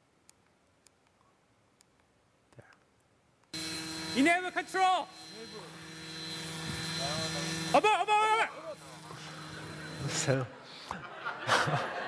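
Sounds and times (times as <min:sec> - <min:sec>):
helicopter engine and rotor humming: 0:03.6 - 0:10.4
man shouting: 0:04.2 - 0:05.1, 0:07.7 - 0:08.9.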